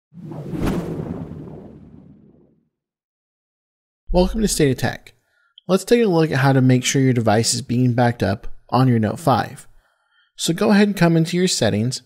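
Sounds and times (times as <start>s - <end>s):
low tail: 4.1s - 4.9s.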